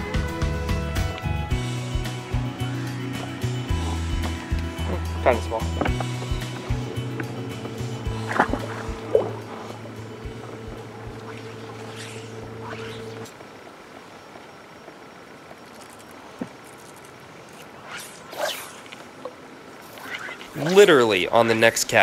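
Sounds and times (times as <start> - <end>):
low hum: 0.0 - 22.0
open-air background: 0.0 - 22.0
fly rod swishing: 7.9 - 13.3, 17.5 - 19.0, 19.8 - 21.0.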